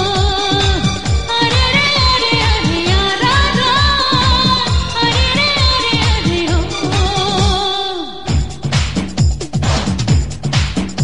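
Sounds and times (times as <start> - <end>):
low drum thuds: 8.3 - 11.0.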